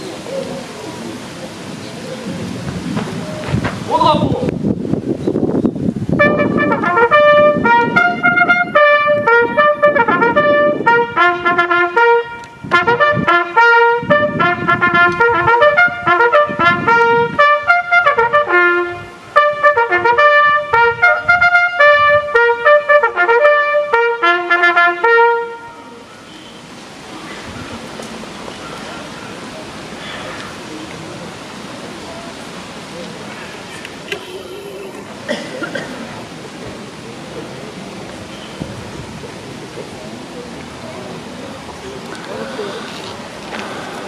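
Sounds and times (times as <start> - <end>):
quiet outdoor murmur: 0.0 - 44.0
trumpet fanfare: 6.2 - 26.1.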